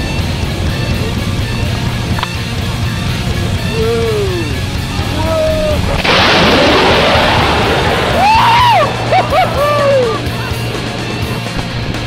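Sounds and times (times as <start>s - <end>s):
fighter jet roar: 0.0s - 12.0s.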